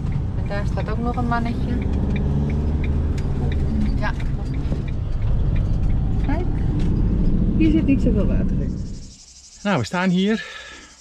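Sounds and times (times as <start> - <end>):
van engine and road noise: 0.0 - 11.0.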